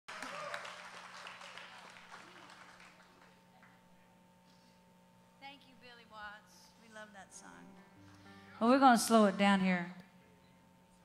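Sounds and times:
audience applauding: 0.1s - 3.8s
steady low hum: 1.7s - 11.0s.

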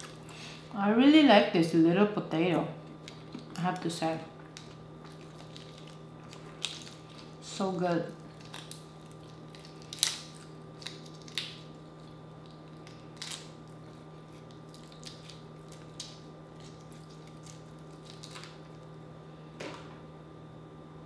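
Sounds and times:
shrimp shell cracking: 8.3s - 13.8s.

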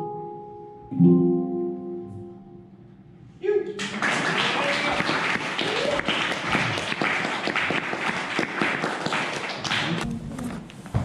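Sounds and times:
audience applauding: 3.8s - 10.1s.

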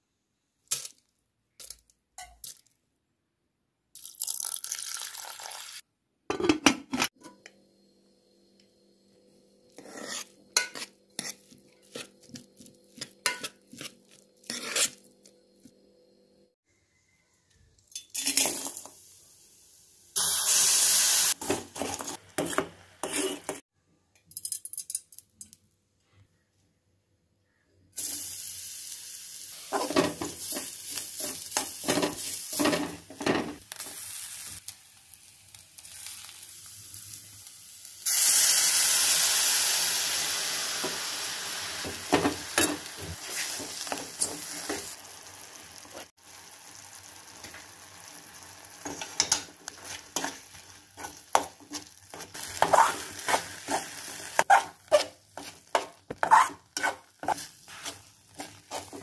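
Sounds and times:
food sizzling in a pan: 4.2s - 5.8s, 9.6s - 16.2s, 18.0s - 23.6s, 28.0s - 59.0s
metal ladle scraping a pan: 9.8s - 12.4s, 13.0s - 15.0s, 21.4s - 23.6s, 48.8s - 59.0s.

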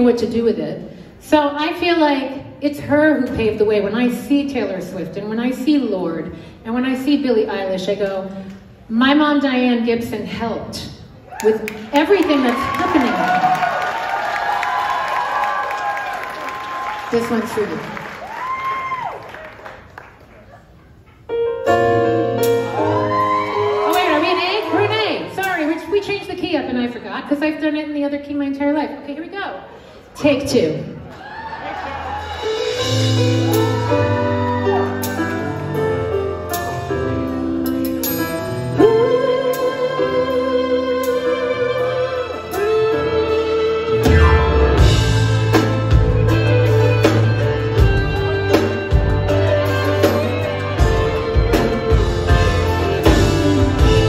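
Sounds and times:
audience cheering and applauding: 11.3s - 20.9s, 22.7s - 26.0s, 31.0s - 36.9s
keyboard piano: 21.1s - 25.4s, 32.0s - 54.0s
woman singing: 38.8s - 43.4s.

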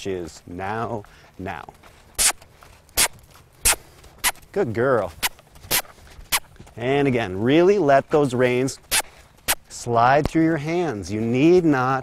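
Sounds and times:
footsteps crunching in sandy dirt: 0.0s - 12.0s.

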